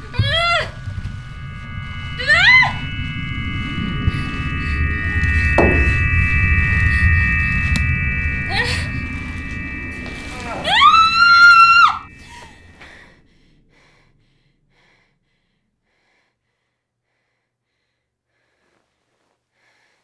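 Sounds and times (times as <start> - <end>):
falling swoosh: 0.0 - 13.3
high scream: 0.0 - 13.3
high droning chord: 0.0 - 14.9
low rumble: 0.0 - 16.6.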